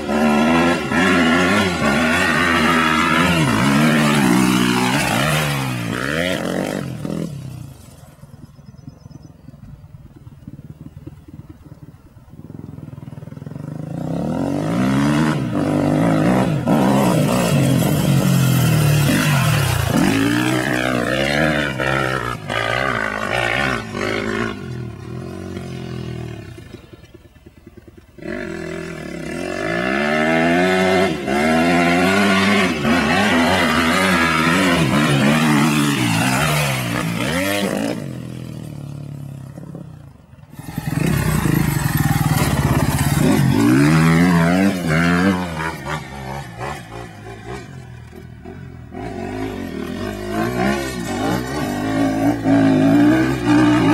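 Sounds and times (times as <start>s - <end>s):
motocross bike engine revving: 0.0s - 8.0s, 12.3s - 53.9s.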